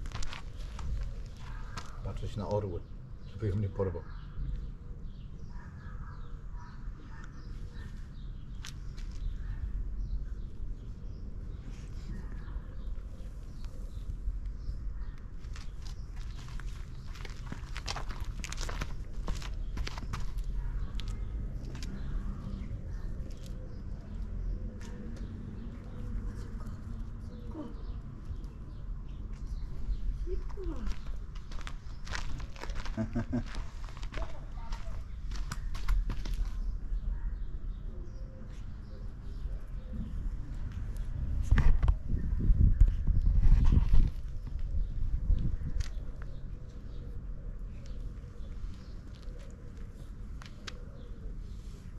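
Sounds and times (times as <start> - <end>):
crunches in gravel and grass: 0.0 - 2.4, 15.3 - 22.2, 30.3 - 36.7.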